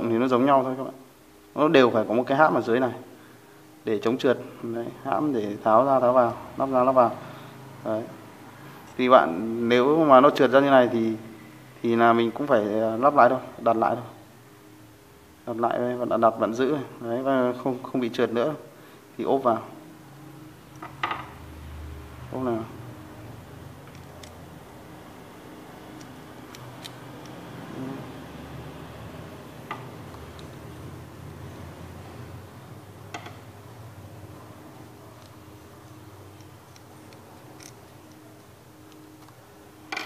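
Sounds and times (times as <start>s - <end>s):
low steady hum: 0.0s - 40.0s
small metal clicks and ticks: 35.2s - 38.2s.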